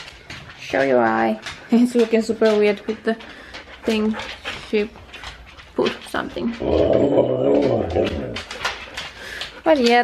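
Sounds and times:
husky howling low: 6.5s - 8.5s.

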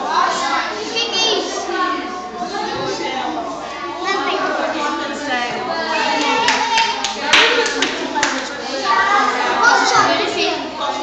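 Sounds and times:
children and adults talking: 0.0s - 11.0s.

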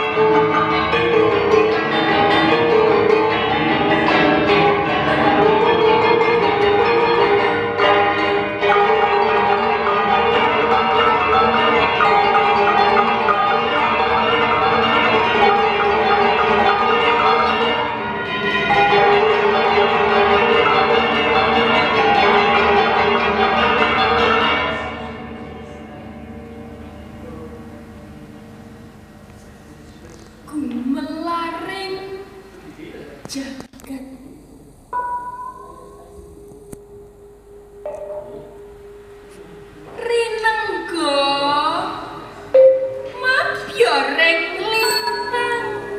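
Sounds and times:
metallophone ensemble music: 0.0s - 30.5s, 42.2s - 45.9s.

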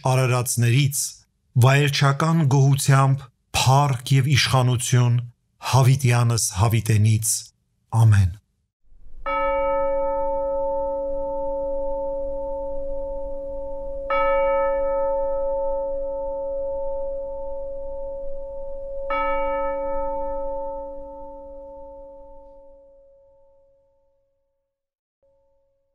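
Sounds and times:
bell ringing in slow strokes: 9.2s - 23.7s.

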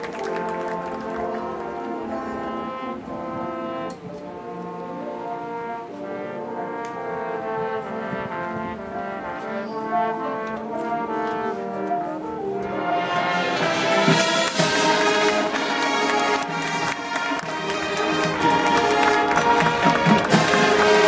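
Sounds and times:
marching band brass chords: 0.0s - 21.0s.

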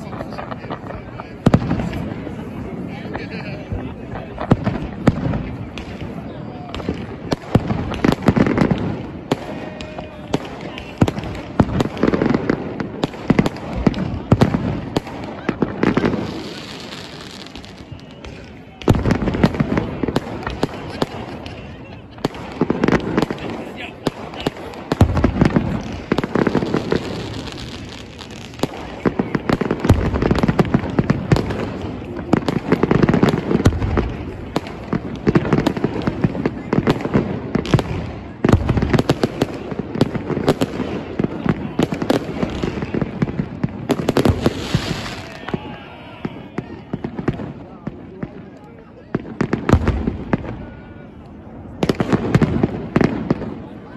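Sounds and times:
fireworks bangs and crackles: 0.0s - 53.9s.

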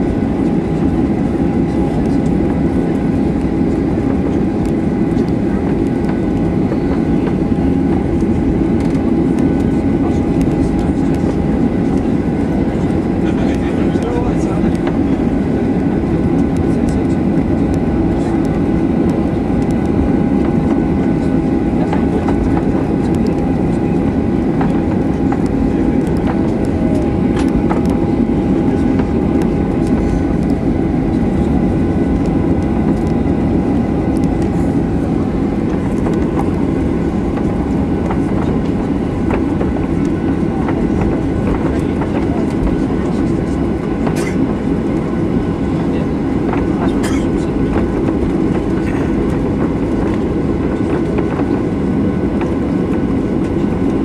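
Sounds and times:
airplane cabin rumble while taxiing: 0.0s - 54.0s
jet engine whine: 0.0s - 54.0s.

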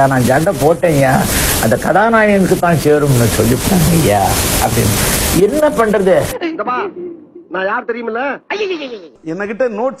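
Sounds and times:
raspy hiss: 0.0s - 6.4s.

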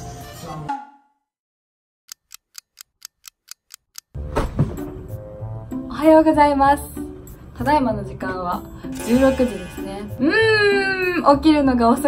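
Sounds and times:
clock ticking: 2.1s - 4.2s.

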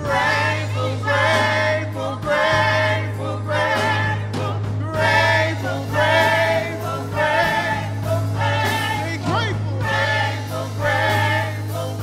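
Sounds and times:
group singing gospel: 0.0s - 12.0s.

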